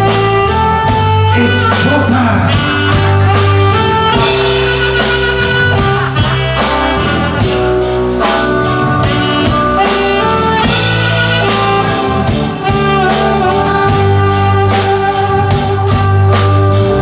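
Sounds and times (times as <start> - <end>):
electric bass guitar: 0.0 - 17.0
saxophone melody: 0.0 - 17.0
steady drum beat: 0.0 - 17.0.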